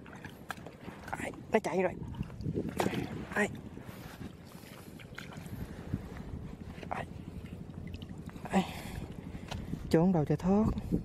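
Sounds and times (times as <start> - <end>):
shallow water stirring: 0.0 - 9.9
wind rumbling on microphone: 0.0 - 11.0.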